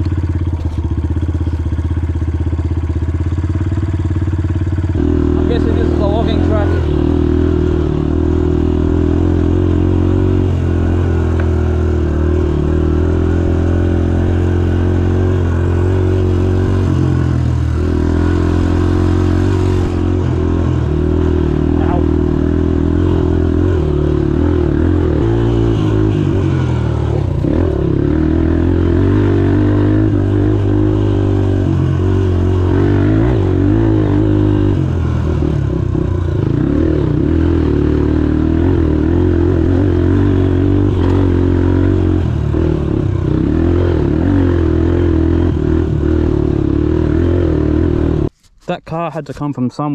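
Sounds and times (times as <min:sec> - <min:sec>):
dirt bike engine revving: 0:00.6 - 0:48.3.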